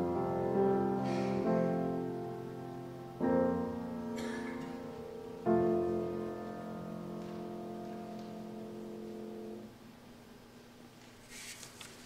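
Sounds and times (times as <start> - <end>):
keyboard chord: 0.0 - 9.8.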